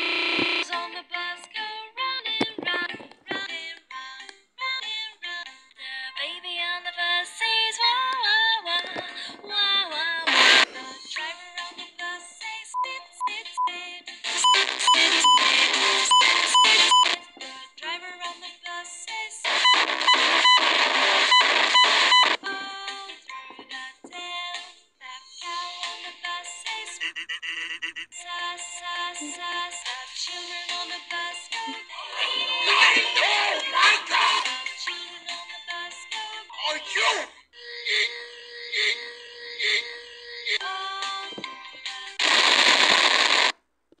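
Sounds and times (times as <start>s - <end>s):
children's song music: 0.6s - 20.0s, 22.3s - 27.1s, 28.0s - 42.5s
harsh distorted noise burst: 42.2s - 43.5s.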